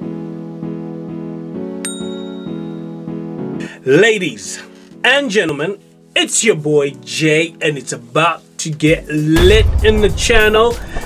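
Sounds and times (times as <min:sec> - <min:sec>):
high notification bell ding: 0:01.8 - 0:03.0.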